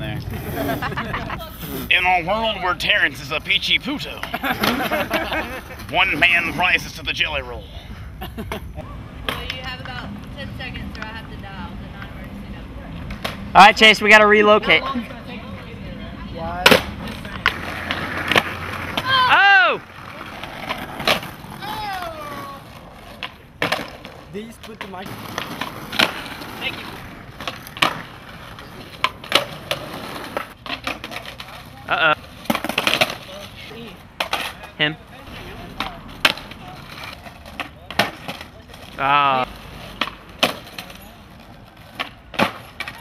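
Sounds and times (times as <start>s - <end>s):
skateboard wheels rolling on asphalt: 0.0s - 7.5s, 14.6s - 43.0s
skateboard clacks: 16.6s - 31.7s, 32.3s - 33.4s, 34.2s - 34.7s, 35.6s - 39.0s, 39.8s - 43.0s
person shouting: 19.0s - 19.8s.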